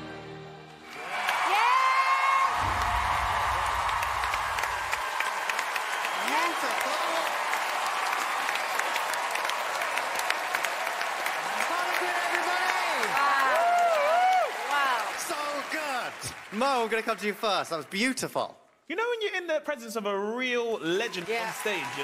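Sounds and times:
audience applauding and cheering: 0.0s - 18.4s, 20.7s - 22.0s
shouted whoops: 0.9s - 10.3s, 11.4s - 15.2s.

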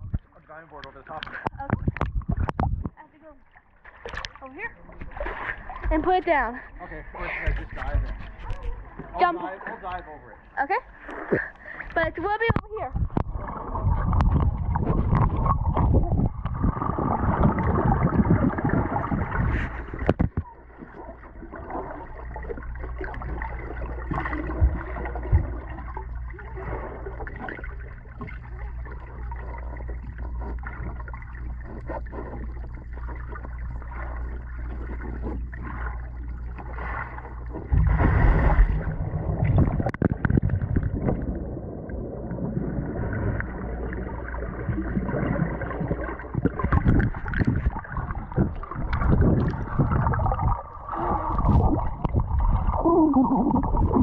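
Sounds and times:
muffled rush of water: 0.0s - 54.0s
steady low hum: 0.0s - 54.0s
underwater gurgling and sloshing: 0.0s - 54.0s.

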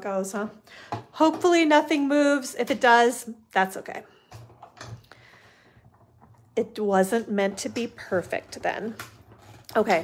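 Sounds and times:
soft steady rolling: 0.2s - 10.0s.

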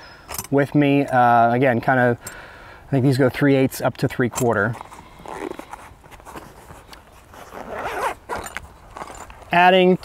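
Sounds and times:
velcro ripping: 4.8s - 9.4s.

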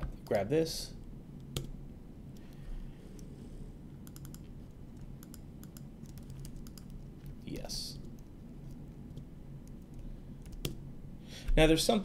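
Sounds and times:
computer keyboard keystrokes: 4.0s - 4.5s, 5.2s - 7.1s, 9.1s - 10.8s.

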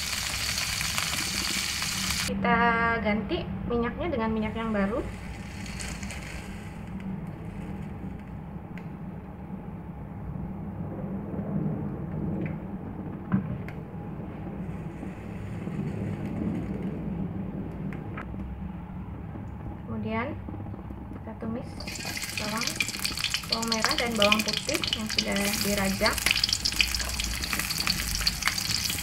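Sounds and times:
steady low rumble: 1.7s - 29.0s
oil pouring into wok: 21.8s - 29.0s.

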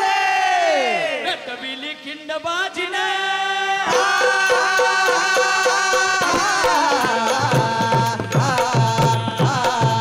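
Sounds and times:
singers holding a sung cry: 2.7s - 7.5s.

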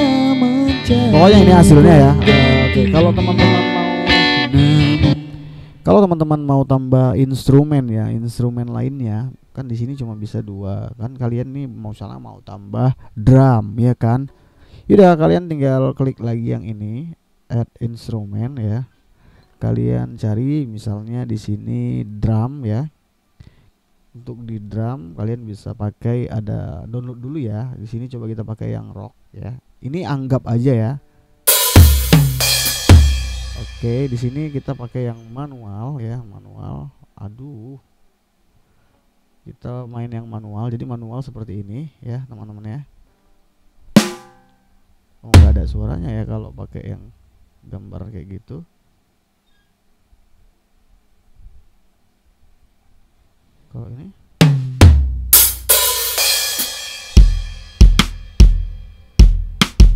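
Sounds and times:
drum hit: 31.5s - 34.8s, 44.0s - 44.4s, 45.4s - 46.0s, 54.4s - 59.9s
cymbal crash: 31.5s - 34.9s, 55.3s - 59.0s
ringing drum hit: 31.5s - 35.0s, 44.0s - 44.5s
kick drum hits: 54.5s - 55.3s, 57.2s - 58.6s, 59.2s - 59.9s.

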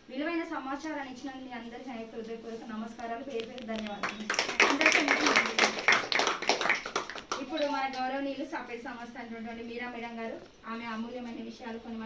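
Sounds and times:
people applauding: 3.8s - 8.0s.

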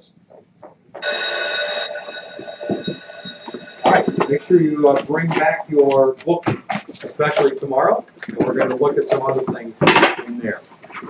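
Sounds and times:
electric bell ringing: 1.0s - 5.2s.

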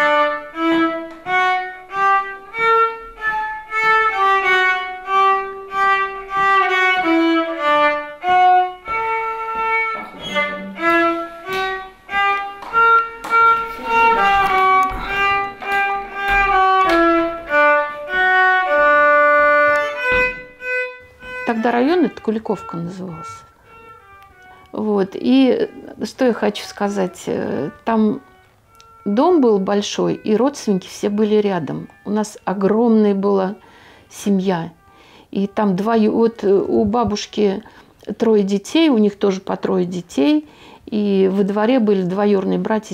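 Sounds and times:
violin playing a dance tune: 0.0s - 37.6s.

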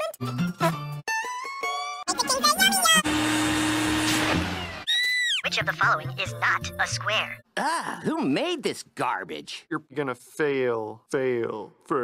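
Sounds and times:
backpack blower motor whirring: 3.0s - 4.9s
high-pitched cry: 4.8s - 5.5s.

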